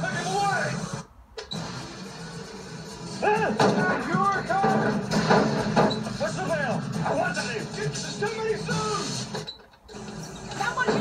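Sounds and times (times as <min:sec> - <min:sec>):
film soundtrack from a tv: 0:00.0 - 0:11.0
quiet background music: 0:00.0 - 0:11.0.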